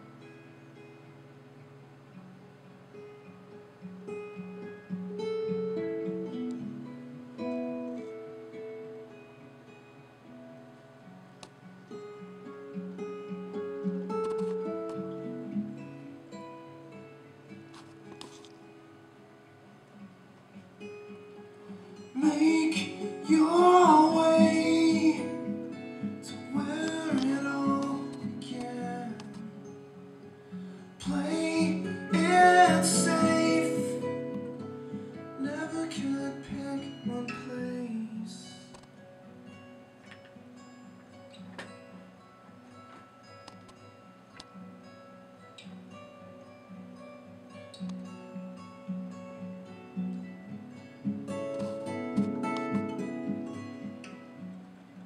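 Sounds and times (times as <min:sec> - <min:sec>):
acoustic guitar picked notes: 0:00.0 - 0:55.0.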